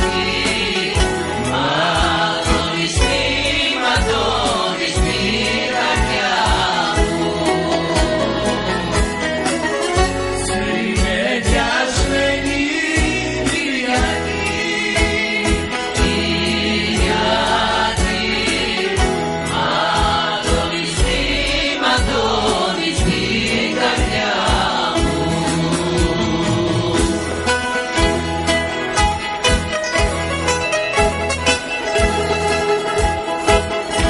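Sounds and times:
women's choir singing: 0:00.0 - 0:09.3, 0:10.5 - 0:27.4
bouzouki: 0:00.0 - 0:34.0
guitars plucking: 0:00.0 - 0:34.0.

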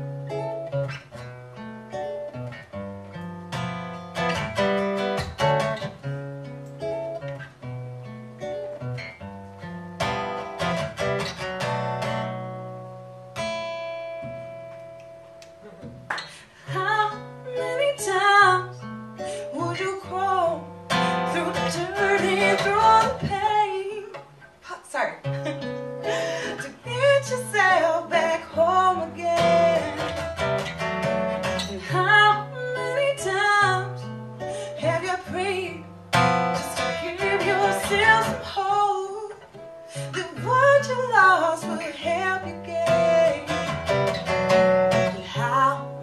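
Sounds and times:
strummed acoustic guitar: 0:00.0 - 0:46.0
woman singing: 0:16.4 - 0:25.1, 0:26.1 - 0:30.2, 0:31.5 - 0:43.8, 0:44.9 - 0:46.0.

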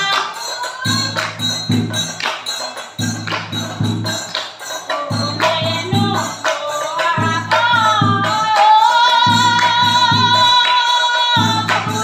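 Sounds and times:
drum strokes: 0:00.0 - 0:12.0
large cymbals: 0:00.0 - 0:12.0.

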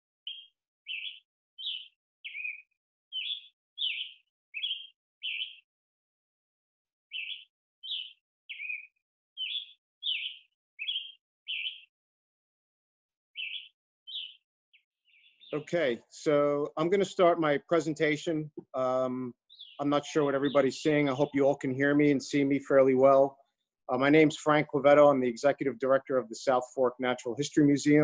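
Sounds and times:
bird chirping: 0:00.2 - 0:05.7, 0:07.1 - 0:11.9, 0:13.3 - 0:15.7, 0:19.4 - 0:22.5.

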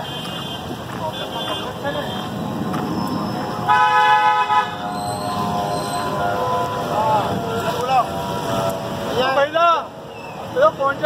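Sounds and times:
street noise: 0:00.0 - 0:11.0
vehicle horn honk: 0:03.7 - 0:08.8.

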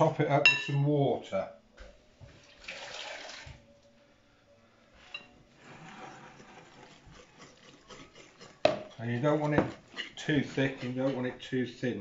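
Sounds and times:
kitchen tap running: 0:02.4 - 0:03.6
utensils clinking and scraping: 0:05.0 - 0:11.5.

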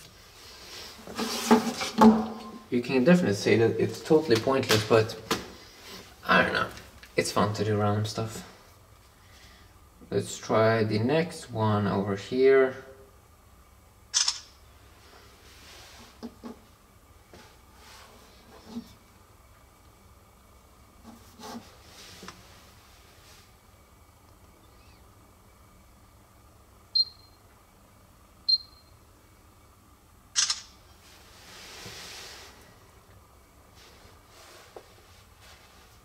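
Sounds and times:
camera shutter click: 0:14.1 - 0:14.5, 0:30.4 - 0:30.7
soft rustle: 0:21.0 - 0:23.6, 0:31.0 - 0:32.8, 0:33.7 - 0:36.0.

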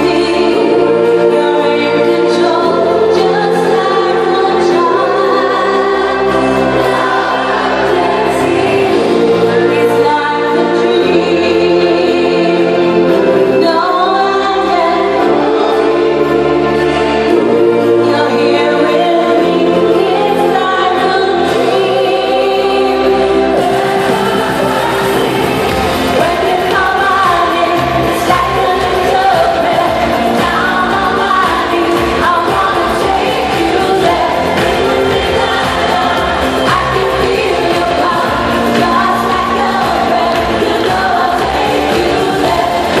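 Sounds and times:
amplified live concert music: 0:00.0 - 0:43.0
lead vocal singing: 0:00.0 - 0:43.0
voices holding choir-like notes: 0:00.0 - 0:43.0.

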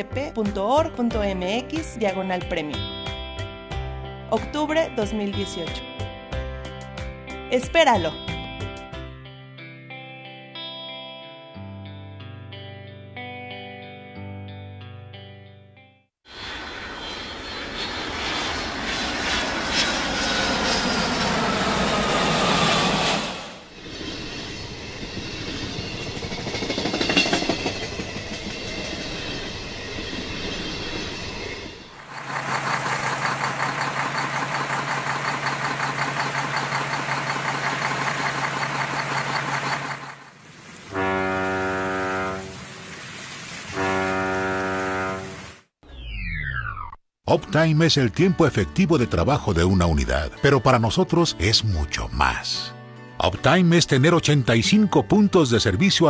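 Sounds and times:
large vehicle rumbling past: 0:31.8 - 0:40.3
vehicle horn blasts: 0:40.9 - 0:42.6, 0:43.7 - 0:45.5.

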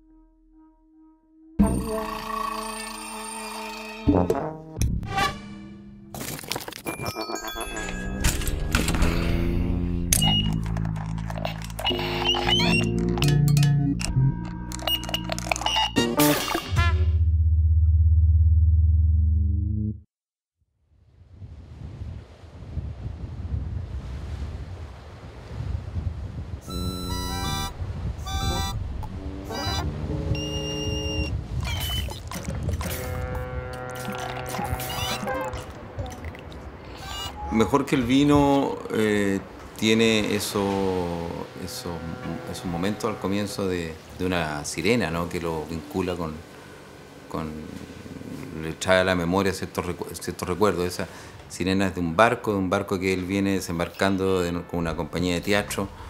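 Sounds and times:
long low horn tone: 0:26.6 - 0:31.4, 0:32.8 - 0:35.6, 0:40.7 - 0:49.3
ship's siren blasts: 0:26.6 - 0:32.1, 0:32.8 - 0:35.9, 0:37.1 - 0:38.8, 0:40.2 - 0:49.3.

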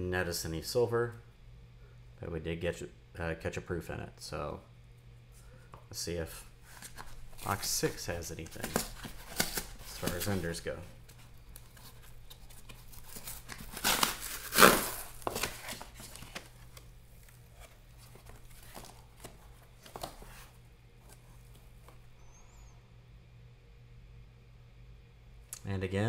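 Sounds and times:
cardboard rustling and scraping: 0:06.6 - 0:22.0
cardboard ripping: 0:06.7 - 0:10.6, 0:11.6 - 0:16.8.

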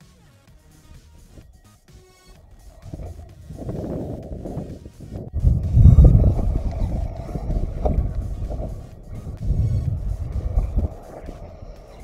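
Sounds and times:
wind buffeting microphone: 0:02.3 - 0:12.0.

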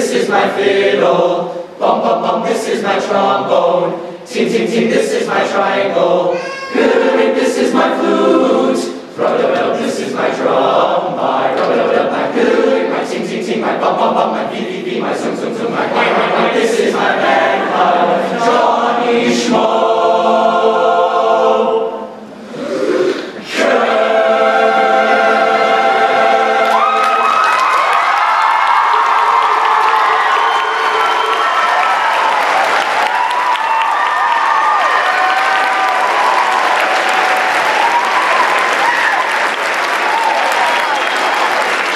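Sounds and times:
young men's choir singing: 0:00.0 - 0:33.0
audience applause and cheering: 0:25.8 - 0:41.9.

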